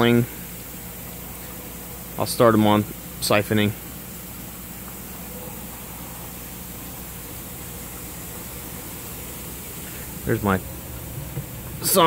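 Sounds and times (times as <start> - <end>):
low hum: 0.0 - 12.0
steady hiss: 0.0 - 12.0.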